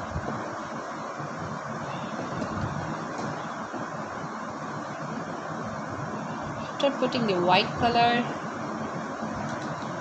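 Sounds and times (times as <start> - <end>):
low hiss and rumble: 0.0 - 10.0.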